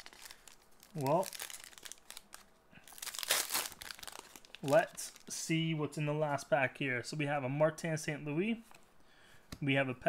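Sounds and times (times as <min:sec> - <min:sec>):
wrapper crinkling and tearing: 0:00.0 - 0:05.3.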